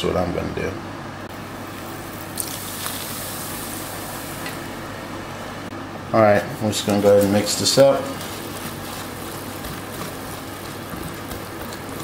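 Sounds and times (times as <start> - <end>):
whisk swishing batter in bowl: 6.8 - 12.0.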